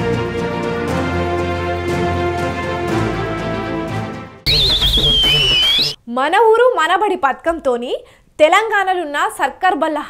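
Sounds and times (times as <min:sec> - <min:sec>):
background music: 0:00.0 - 0:05.2
high wavering whistle sliding down: 0:04.5 - 0:06.0.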